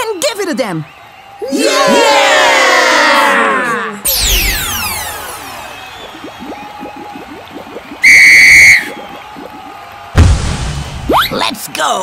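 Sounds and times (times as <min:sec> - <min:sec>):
cartoon falling-sweep effect: 0:04.0 - 0:09.5
referee's whistle blast: 0:08.0 - 0:09.2
low thud: 0:10.2 - 0:11.1.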